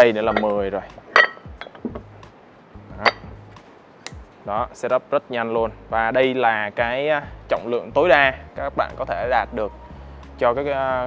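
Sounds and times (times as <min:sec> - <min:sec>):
weight plates clinking: 0:00.0 - 0:02.1, 0:03.0 - 0:03.4.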